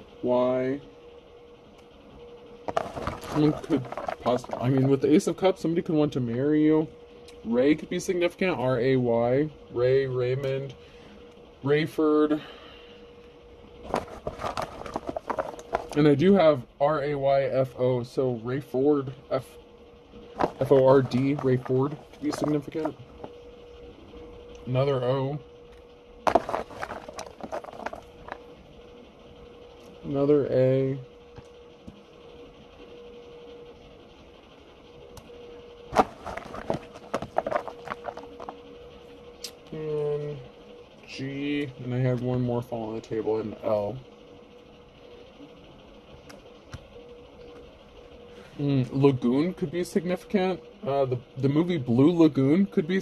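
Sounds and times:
steady low hum: 0.0 - 53.0
cards being shuffled by hand: 2.7 - 5.1, 13.8 - 16.1, 20.4 - 23.4, 26.3 - 28.4, 35.9 - 38.6.

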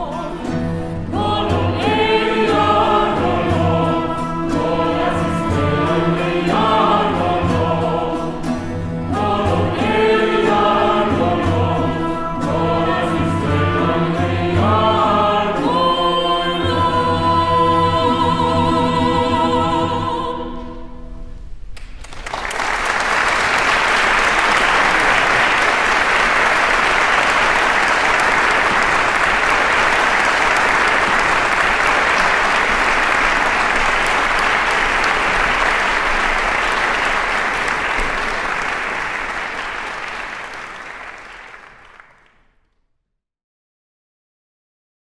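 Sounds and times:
audience applauding: 21.8 - 42.4.

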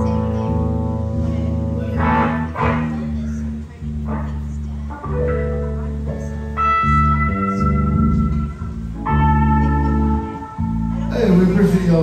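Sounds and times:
live band playing held chords: 0.0 - 12.0.

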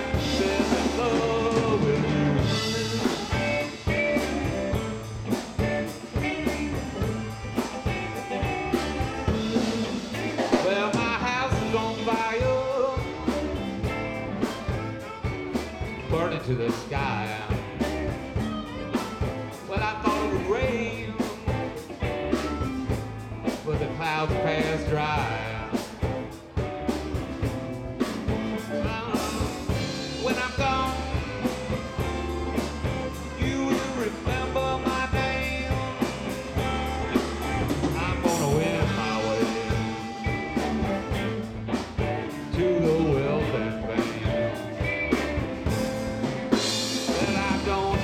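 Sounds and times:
live blues band playing: 0.0 - 48.0.

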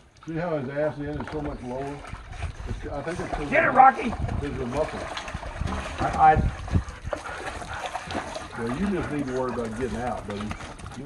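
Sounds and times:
dog paddling in water: 0.0 - 11.0.

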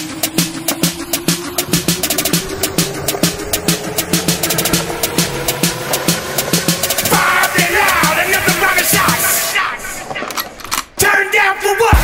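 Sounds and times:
rapping over hip hop beat: 4.5 - 10.4, 11.0 - 12.0.

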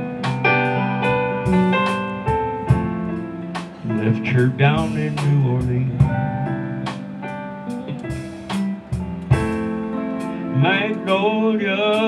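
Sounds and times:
blues band playing: 0.0 - 12.0
ringing keyboard chords: 0.0 - 12.0.

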